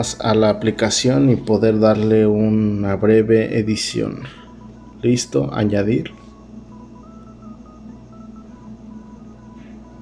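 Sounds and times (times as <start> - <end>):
low steady hum: 0.0 - 10.0
simple electronic melody: 0.0 - 10.0.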